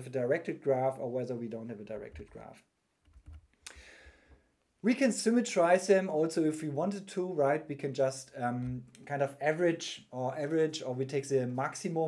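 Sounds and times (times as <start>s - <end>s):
man speaking: 0.0s - 2.7s, 4.8s - 12.0s
soft breath: 3.6s - 4.6s.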